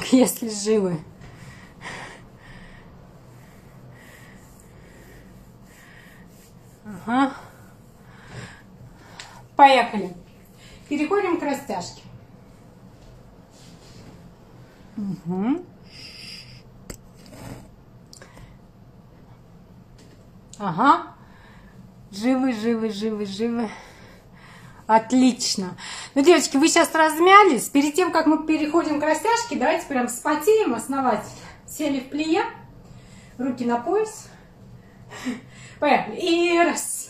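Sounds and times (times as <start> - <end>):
low steady hum: 0.0 - 37.0
woman breathing hard: 1.2 - 6.4.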